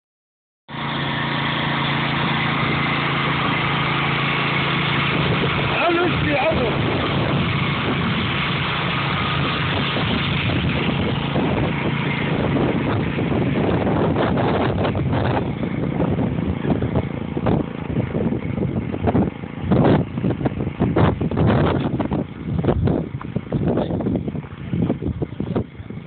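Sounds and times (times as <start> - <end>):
sprayer pump engine running: 0.7 - 26.0
wind buffeting microphone: 1.7 - 26.0.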